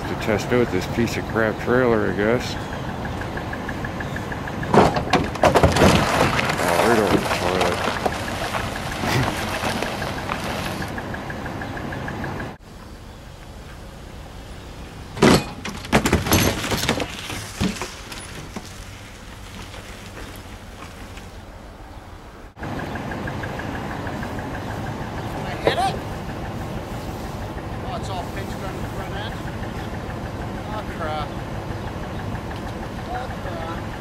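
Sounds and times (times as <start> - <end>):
metallic clunks: 4.6 - 6.0, 15.2 - 18.7.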